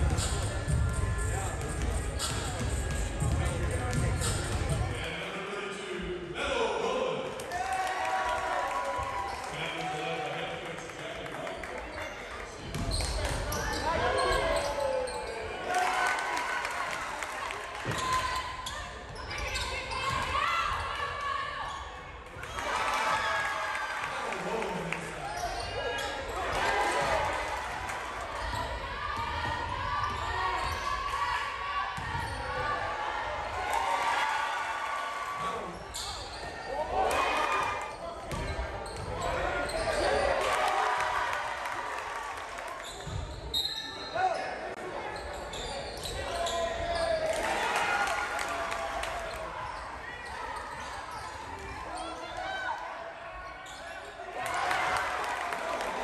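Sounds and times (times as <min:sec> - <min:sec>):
voices of players and spectators: 0:00.0 - 0:56.0
sneakers squeaking on hardwood: 0:37.9 - 0:40.0.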